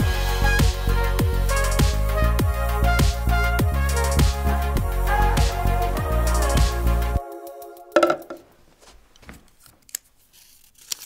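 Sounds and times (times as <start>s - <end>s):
paper rustling: 8.4s - 11.0s
paper crinkles: 8.5s - 11.0s.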